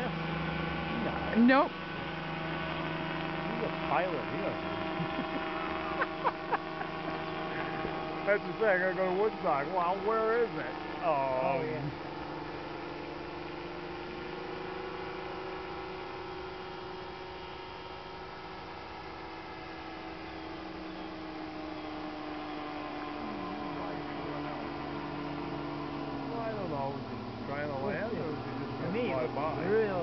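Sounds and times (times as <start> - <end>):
aircraft engine droning: 0.0 - 30.0.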